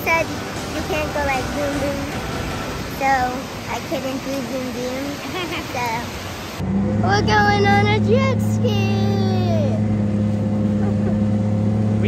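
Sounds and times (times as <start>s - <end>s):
jet ski engine humming: 0.0s - 12.0s
water rushing: 0.0s - 12.0s.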